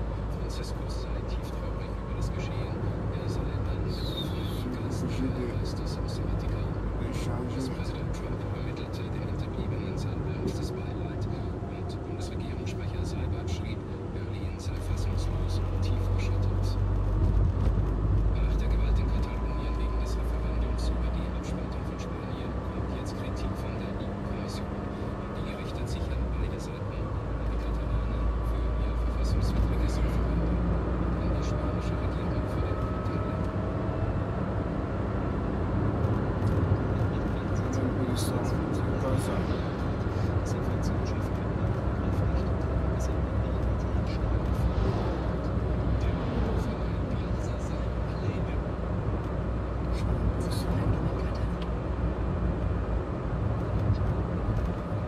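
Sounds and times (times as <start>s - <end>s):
car engine and road rumble: 0.0s - 55.0s.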